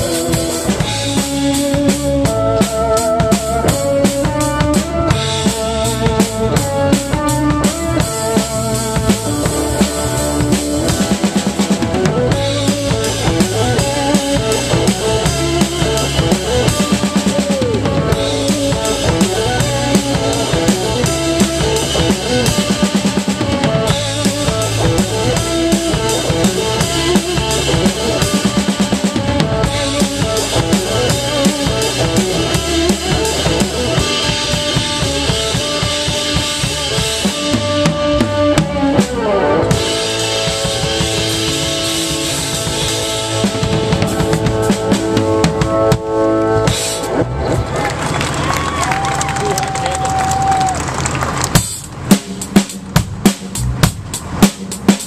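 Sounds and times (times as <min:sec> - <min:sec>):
electric guitar: 0:00.0 - 0:52.2
drum kit: 0:00.0 - 0:55.0.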